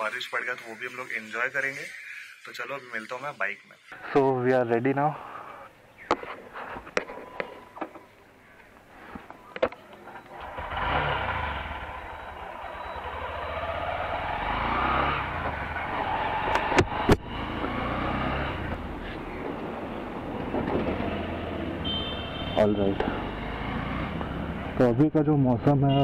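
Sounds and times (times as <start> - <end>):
motorcycle engine rumble: 6.4 - 24.8.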